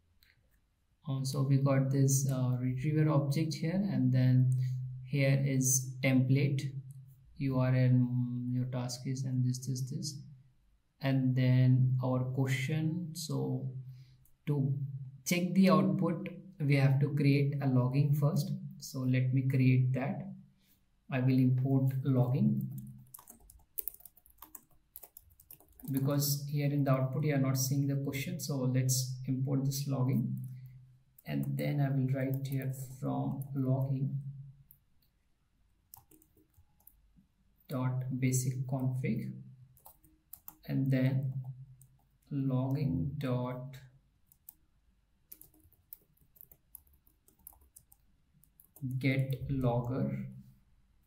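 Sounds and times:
person speaking: 1.0 - 6.8, 7.4 - 10.3, 14.4 - 20.3, 21.1 - 34.5, 37.6 - 41.5, 42.2 - 44.5, 48.4 - 50.6
keyboard typing clicks: 22.6 - 26.4, 35.9 - 37.0, 39.8 - 40.6, 45.3 - 49.5.

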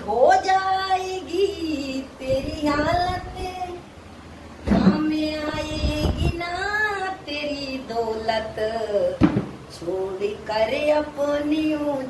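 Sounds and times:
woman singing: 0.0 - 3.8, 4.6 - 12.0.

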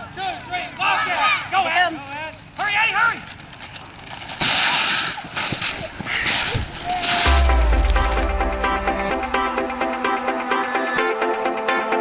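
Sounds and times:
paper banner tearing rush: 4.4 - 7.3.

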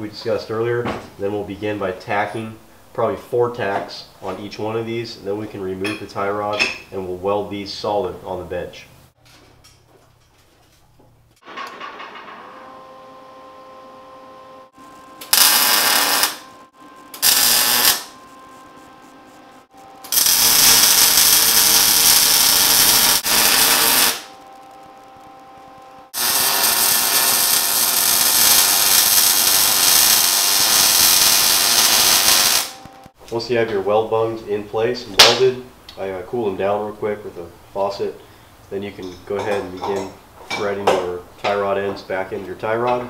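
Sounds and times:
steady hum: 12.6 - 33.2
welder arc crackling: 14.7 - 33.4.

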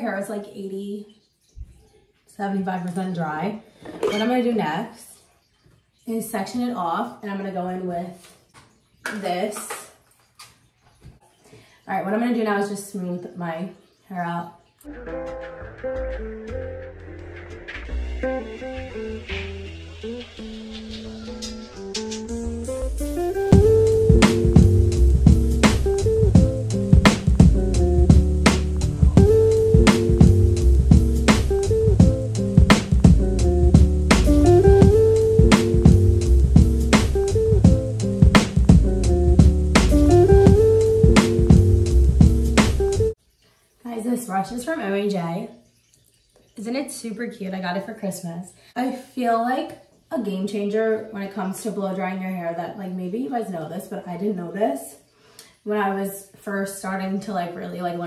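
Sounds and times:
woman talking: 0.0 - 1.1, 2.4 - 5.2, 6.1 - 8.2, 9.1 - 9.9, 11.9 - 14.6, 43.8 - 45.6, 46.6 - 55.0, 55.6 - 58.0
lo-fi music with plucked guitar: 14.9 - 43.2.

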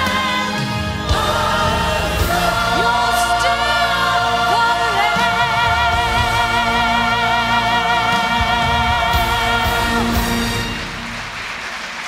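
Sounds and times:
church choir singing: 0.0 - 11.3.

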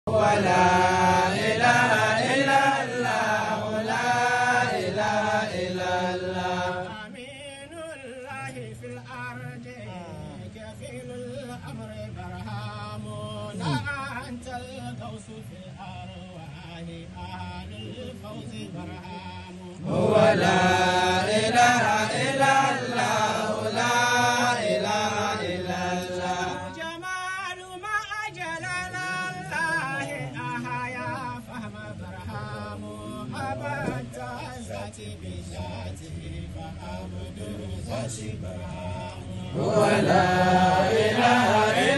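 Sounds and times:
melodic vocal chanting: 0.0 - 41.9.

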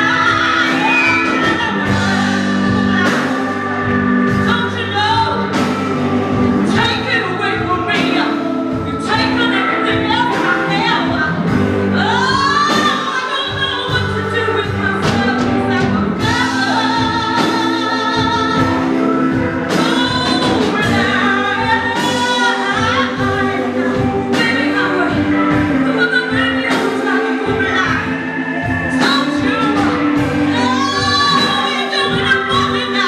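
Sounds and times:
bass guitar: 0.0 - 33.0
drums: 0.0 - 33.0
electric guitar: 0.0 - 33.0
woman singing blues: 0.0 - 33.0.

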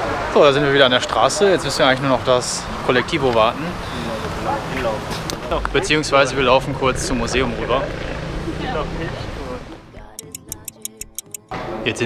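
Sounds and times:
stopwatch ticking: 10.1 - 11.5.

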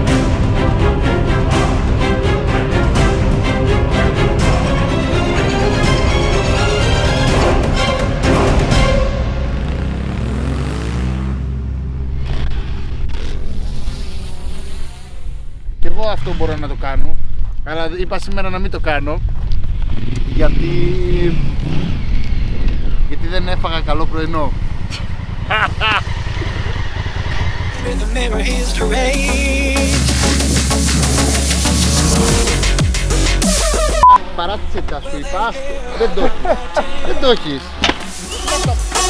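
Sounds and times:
music: 0.0 - 10.1, 27.8 - 34.1, 37.8 - 39.0
motorcycle engine revving: 8.3 - 15.6, 19.2 - 27.9.

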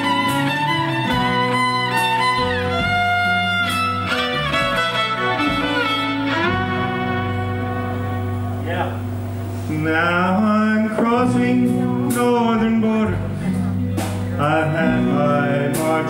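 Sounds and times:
fiddle lead: 0.0 - 15.6
strummed guitars: 0.0 - 16.0.

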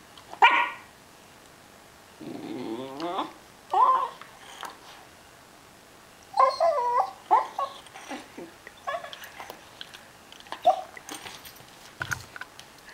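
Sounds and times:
dog whining: 2.2 - 4.8, 6.3 - 9.7, 10.6 - 11.0.

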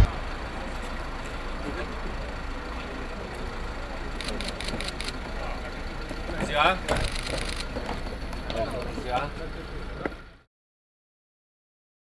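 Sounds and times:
faint voices: 0.0 - 10.4
vehicle engine idling: 0.0 - 10.5.

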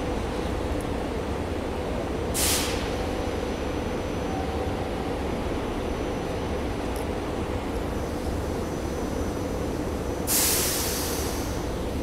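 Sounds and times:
railcar equipment humming: 0.0 - 12.0
short hiss of air: 2.4 - 3.0, 10.3 - 11.6.

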